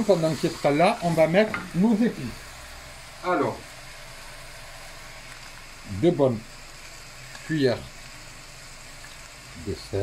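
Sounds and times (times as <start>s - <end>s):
meat and onion sizzling in oil: 0.0s - 10.0s.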